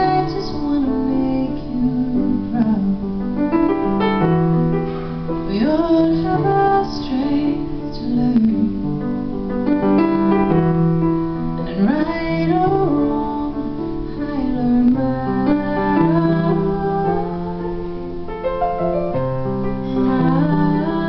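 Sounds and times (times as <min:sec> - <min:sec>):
woman singing: 0:00.0 - 0:03.8, 0:05.4 - 0:09.2, 0:11.5 - 0:18.1, 0:19.6 - 0:21.0
piano chords: 0:00.0 - 0:21.0.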